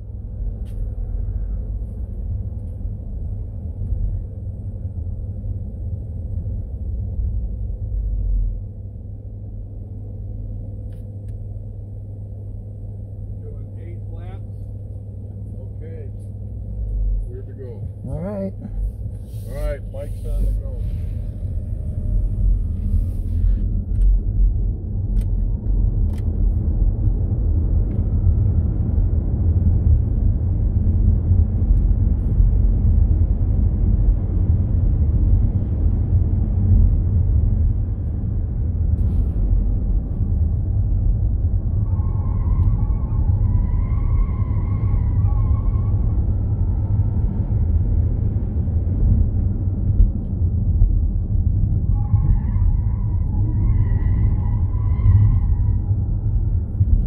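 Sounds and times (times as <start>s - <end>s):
road and wind noise in car cabin: 0.0s - 57.0s.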